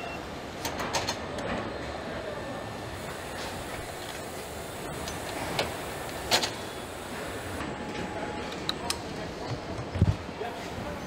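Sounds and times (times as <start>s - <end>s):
production line hum and hiss: 0.0s - 11.0s.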